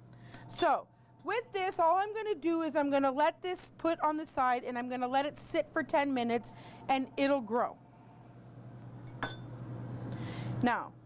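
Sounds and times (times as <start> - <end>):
low steady hum: 0.0 - 11.0
metallic clink of kitchenware: 9.1 - 9.5.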